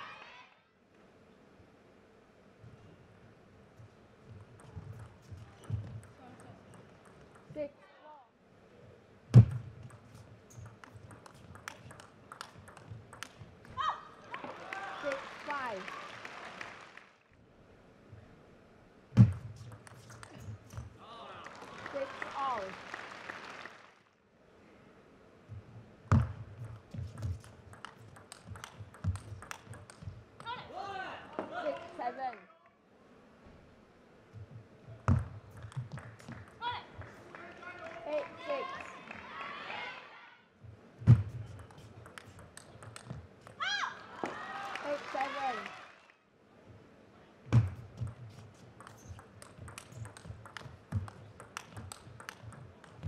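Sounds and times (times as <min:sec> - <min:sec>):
table tennis ball clicking: 0:09.8 - 0:13.5, 0:26.6 - 0:30.1, 0:41.6 - 0:43.6, 0:48.0 - 0:53.0.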